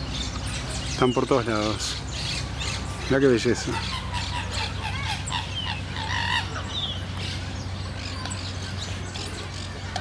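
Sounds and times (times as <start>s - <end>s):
small birds chirping: 0.0s - 10.0s.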